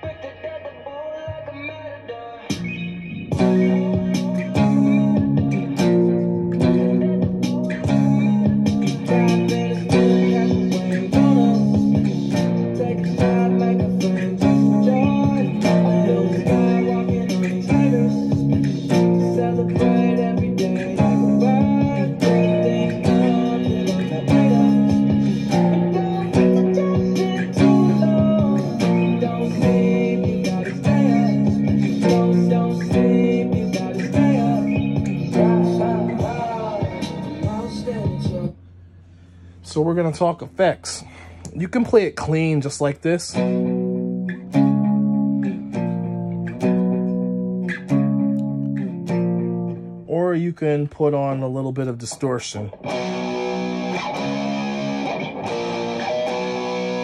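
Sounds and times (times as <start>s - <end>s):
clean electric guitar power chords: 2.6s - 38.6s, 43.4s - 50.1s, 52.7s - 57.0s.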